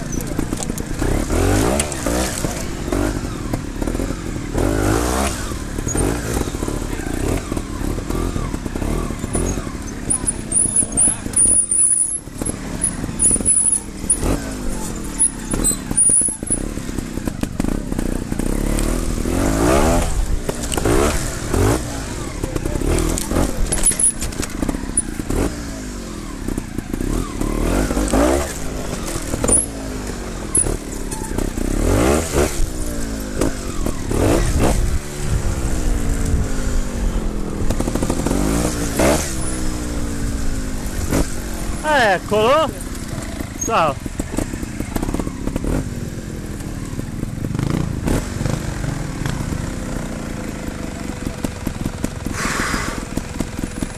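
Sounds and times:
motorcycle engine revving: 0:00.0 - 0:53.9.

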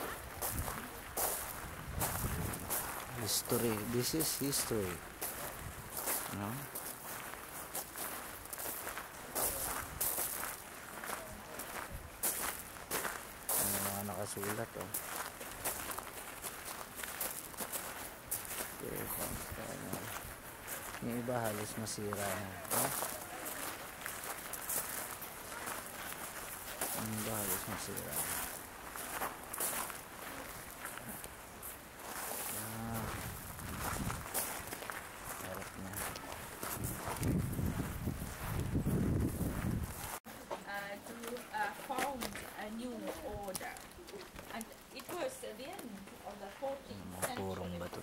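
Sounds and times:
footsteps on gravel: 0:00.0 - 0:48.0
person humming low: 0:32.5 - 0:33.4.

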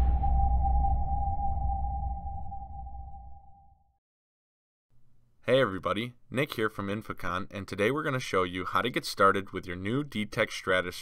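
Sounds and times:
low rumble: 0:00.0 - 0:03.8.

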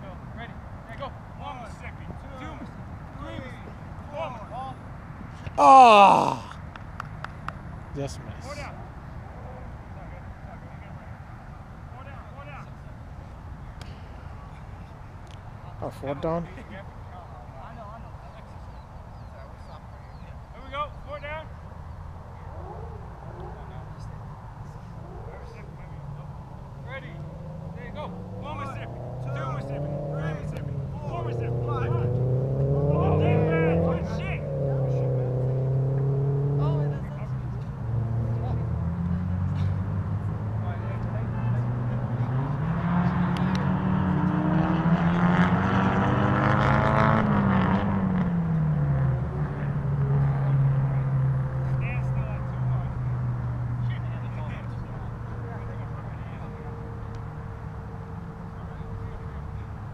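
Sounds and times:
vehicle engines passing: 0:00.0 - 0:59.9.

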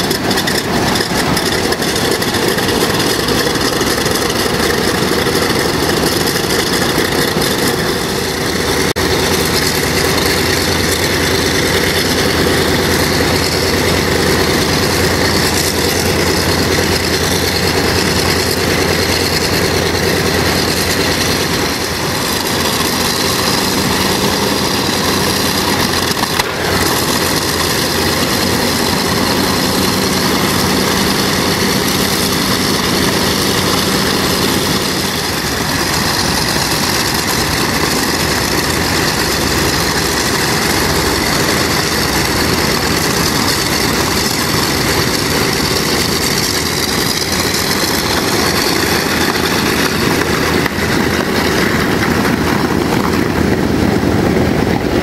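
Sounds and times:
propeller plane engines droning: 0:00.0 - 0:55.0.

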